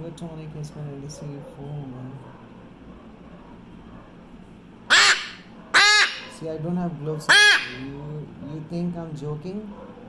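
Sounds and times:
macaw squawking: 4.9s - 6.5s, 7.2s - 8.1s.

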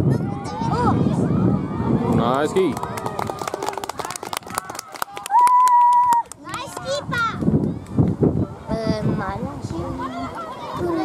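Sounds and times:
children's voices: 0.0s - 2.1s, 6.4s - 11.0s.

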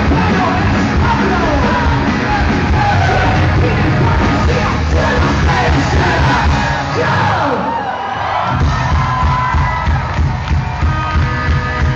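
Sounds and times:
live punk rock band: 0.0s - 7.8s, 8.4s - 11.9s
crowd cheering: 0.0s - 11.9s.

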